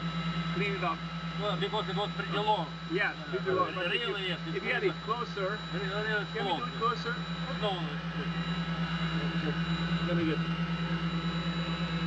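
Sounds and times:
fans and air handling whir: 0.0 - 12.0
pulsing low hum: 0.0 - 12.0
thin high whine: 0.0 - 12.0.

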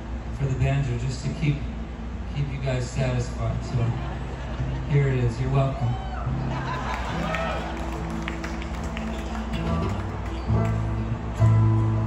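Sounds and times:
acoustic string duo playing: 3.4 - 12.0.

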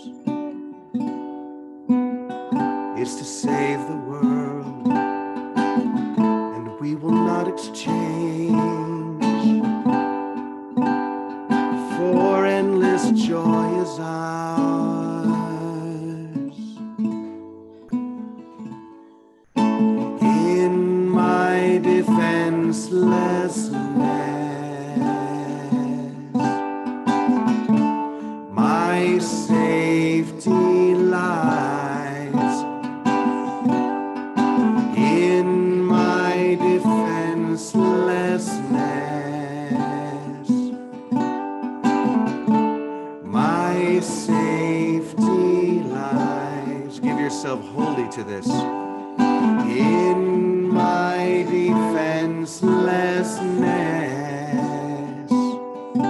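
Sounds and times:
man singing: 0.0 - 0.3, 2.9 - 5.1, 6.4 - 10.0, 11.5 - 17.0, 19.6 - 33.8, 34.6 - 41.0, 43.2 - 56.0
ukulele strumming: 0.0 - 56.0.

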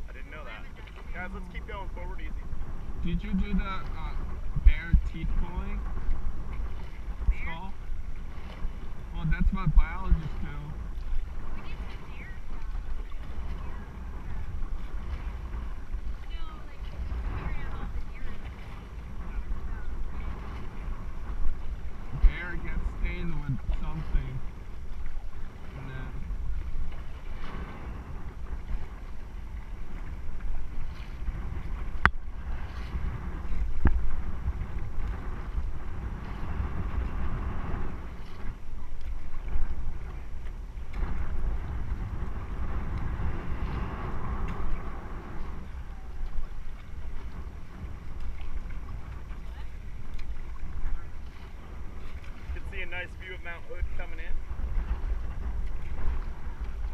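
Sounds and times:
paddles splashing in river: 0.0 - 56.9
wind buffeting microphone: 0.0 - 56.9.

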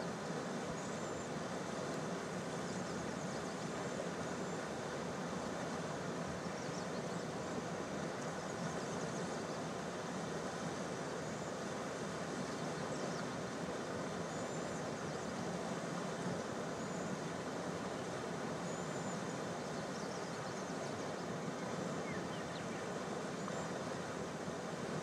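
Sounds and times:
river water rushing: 0.0 - 25.0.

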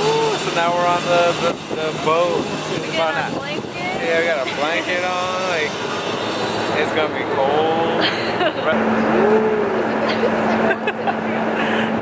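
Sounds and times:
boat motor noise: 0.0 - 12.0
people talking and laughing: 0.0 - 12.0
wind: 0.0 - 12.0.

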